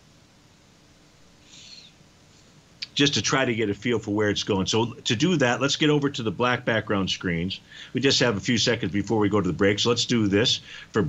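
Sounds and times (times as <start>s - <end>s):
faint breath hiss: 0.0s - 11.0s
man speaking: 2.8s - 11.0s.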